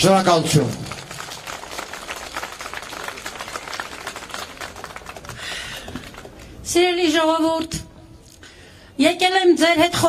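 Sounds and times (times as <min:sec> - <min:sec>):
crowd applauding: 0:00.5 - 0:06.6.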